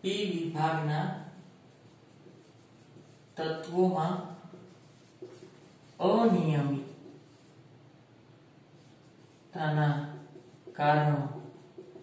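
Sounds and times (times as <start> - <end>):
marker writing on whiteboard: 0.4 - 7.6, 8.7 - 12.0.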